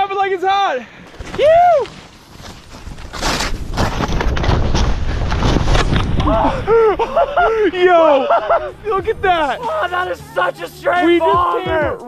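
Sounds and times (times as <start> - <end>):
skis rushing through powder snow: 1.2 - 9.9
person whooping: 1.4 - 1.9, 6.2 - 8.5
wind buffeting microphone: 3.6 - 9.6.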